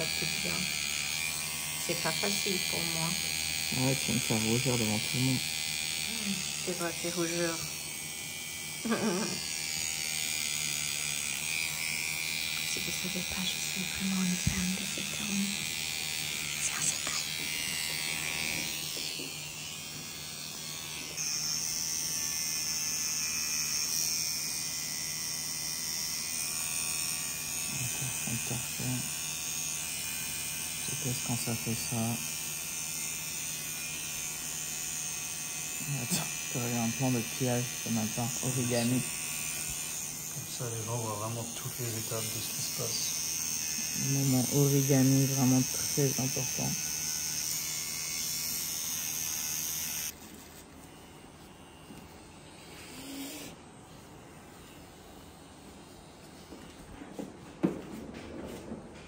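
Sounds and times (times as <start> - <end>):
tattoo machine buzzing: 0.0 - 56.6
person laughing: 8.8 - 9.4.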